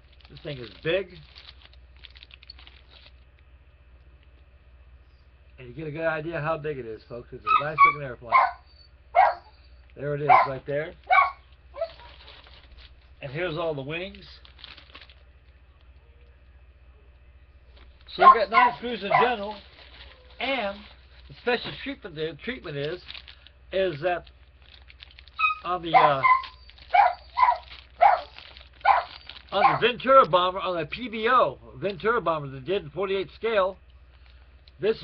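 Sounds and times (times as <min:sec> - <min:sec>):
plastic rustling: 0:00.0 - 0:03.5, 0:09.2 - 0:16.0, 0:17.6 - 0:30.6, 0:32.5 - 0:35.0
dog barking: 0:07.5 - 0:09.5, 0:10.3 - 0:12.1, 0:18.2 - 0:19.4, 0:25.4 - 0:29.9.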